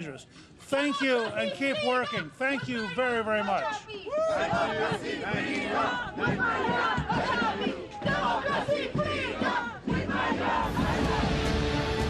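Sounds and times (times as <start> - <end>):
crowd shouting together: 3.7 - 12.0.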